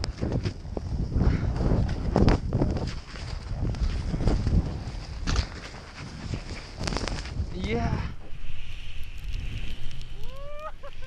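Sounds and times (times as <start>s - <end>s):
wind rumble on microphone: 0.0s - 11.0s
skis running through powder snow: 0.1s - 7.6s.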